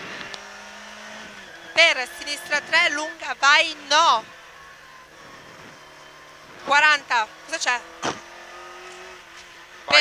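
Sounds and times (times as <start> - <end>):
rally car engine at steady revs: 0.0 - 10.0
road and tyre noise: 0.0 - 10.0.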